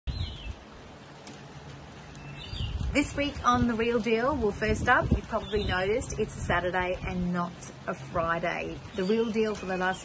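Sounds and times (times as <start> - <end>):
outdoor background hush: 0.1 - 10.0.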